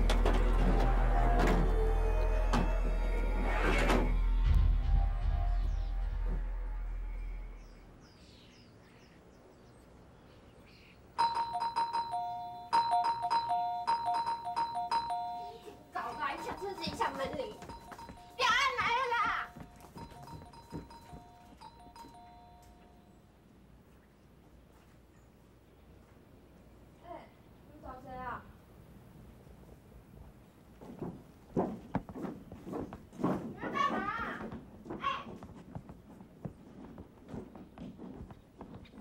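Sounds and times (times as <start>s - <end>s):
two-note doorbell chime: 11.2s - 17.0s, 20.0s - 23.0s.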